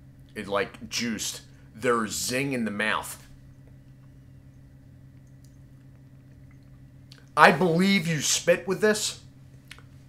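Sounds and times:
low electrical hum: 0:00.0 - 0:10.0
wet mouth clicks: 0:05.2 - 0:07.3.

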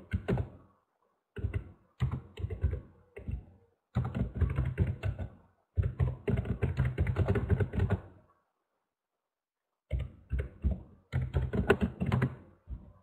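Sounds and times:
computer keyboard typing: 0:00.0 - 0:00.5, 0:01.4 - 0:03.4, 0:04.0 - 0:08.1, 0:09.9 - 0:12.4.

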